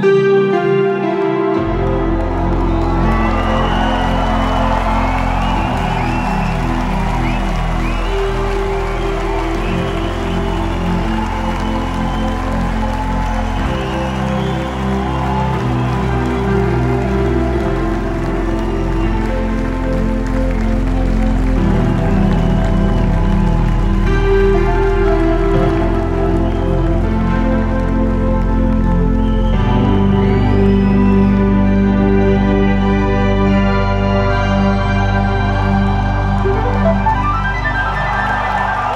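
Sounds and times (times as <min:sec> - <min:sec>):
slow band intro music: 0:00.0 - 0:38.9
crowd cheering: 0:01.0 - 0:32.1, 0:34.5 - 0:38.9.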